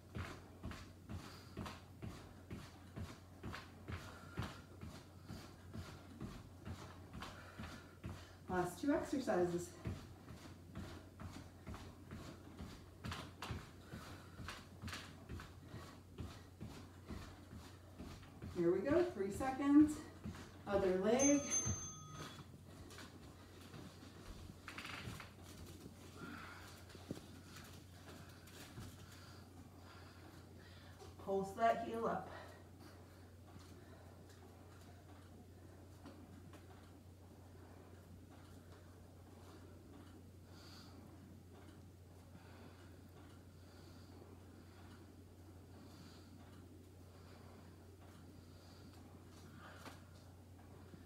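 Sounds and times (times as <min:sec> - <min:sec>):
footsteps marching on mat: 0:00.0 - 0:51.0
steady low hum: 0:00.0 - 0:51.0.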